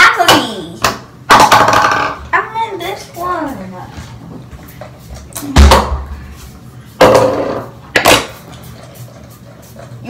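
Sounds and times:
objects knocking on countertop: 0.8s - 2.2s, 7.0s - 8.4s.

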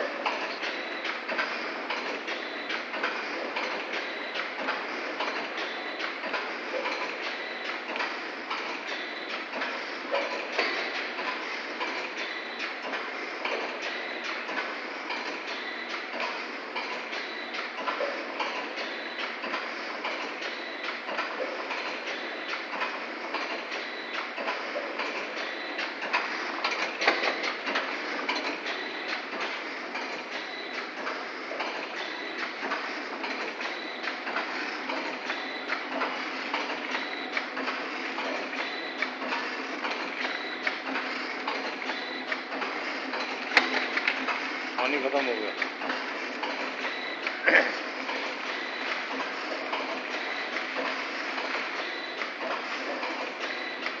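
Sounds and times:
packing machine clattering: 0.0s - 54.0s.

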